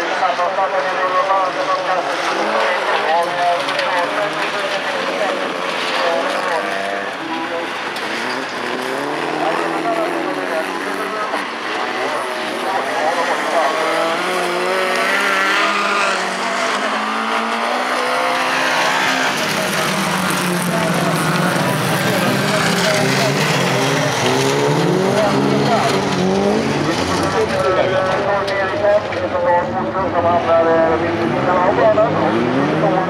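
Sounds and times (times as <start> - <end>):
race car engines revving: 0.0 - 33.0.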